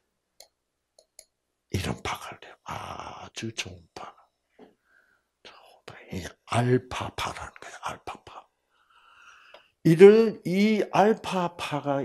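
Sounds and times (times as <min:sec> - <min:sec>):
man whispering: 0:01.8 - 0:04.3, 0:05.4 - 0:08.5.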